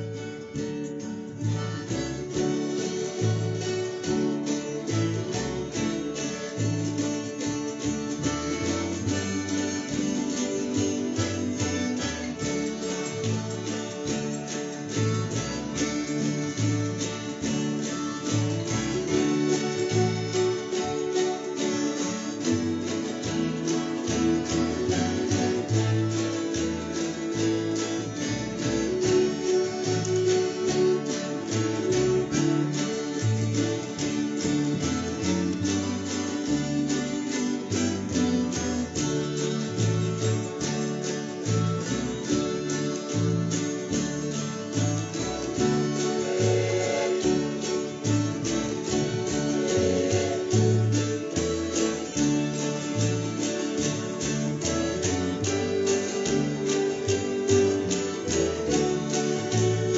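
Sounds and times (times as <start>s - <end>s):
acoustic guitar strumming: 0.0s - 59.9s
mountain dulcimer: 0.0s - 59.9s.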